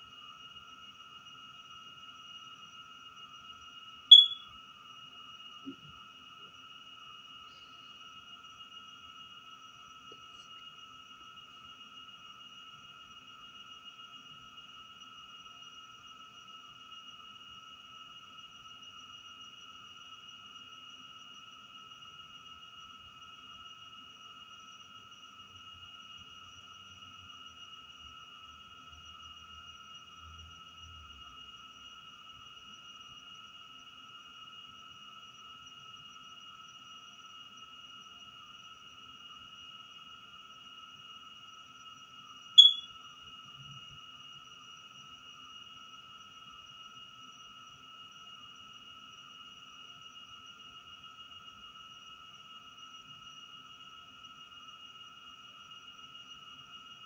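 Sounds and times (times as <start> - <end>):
high-pitched electronic whine: 4.1 - 4.5, 42.6 - 43.0.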